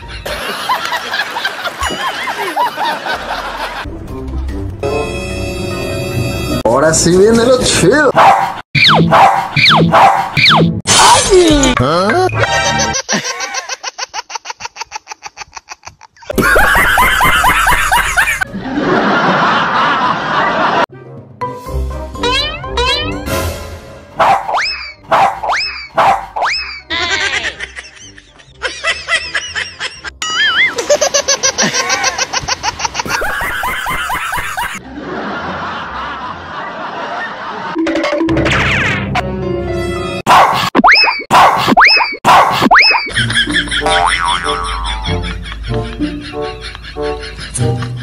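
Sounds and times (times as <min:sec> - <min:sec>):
comic music: 0:03.2 - 0:06.8, 0:08.8 - 0:13.0, 0:20.9 - 0:30.8, 0:37.8 - 0:48.0
dog barking and yelping: 0:08.1 - 0:10.6, 0:24.2 - 0:26.8, 0:40.3 - 0:43.0
comic sound effects: 0:22.2 - 0:23.7.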